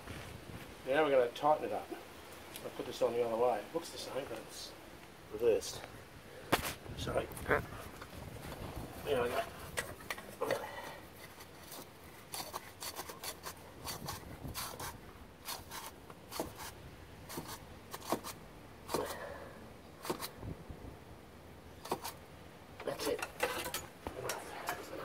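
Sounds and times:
oil filter clicking and scraping: 9.7s - 18.3s.

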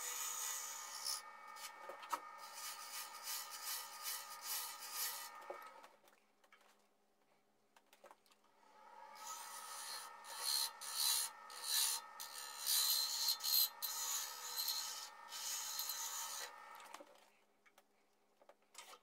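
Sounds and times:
gouge scraping spinning wood: 0.0s - 5.8s, 9.1s - 17.0s
wood lathe motor humming: 0.0s - 5.8s, 8.7s - 17.0s.

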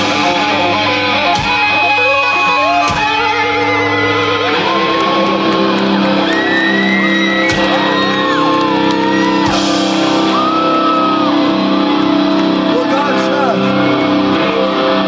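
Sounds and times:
rock band playing live: 0.0s - 15.0s.

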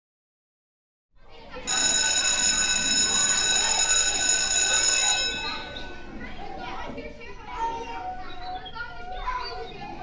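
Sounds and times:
room background noise: 1.2s - 10.0s
electric school bell ringing: 1.6s - 6.4s.

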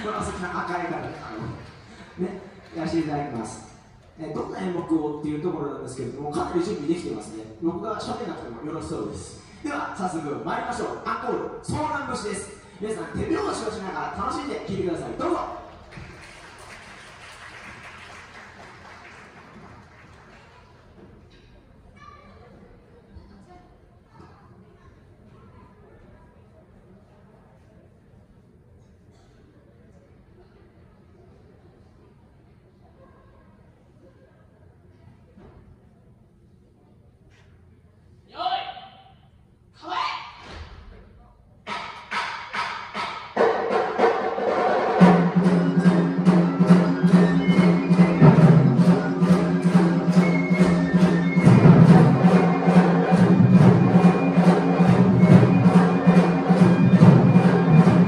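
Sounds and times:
seated audience in a hall: 0.0s - 58.0s.

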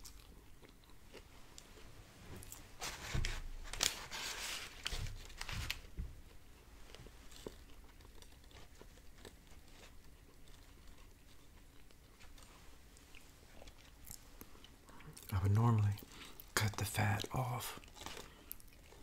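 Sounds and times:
biting and chewing biscuit: 0.0s - 19.0s.

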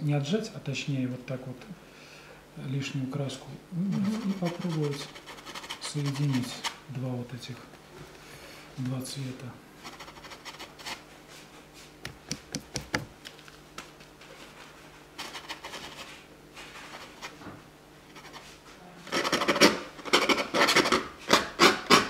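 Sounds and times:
bristle brush scrubbing canvas: 3.9s - 6.6s.

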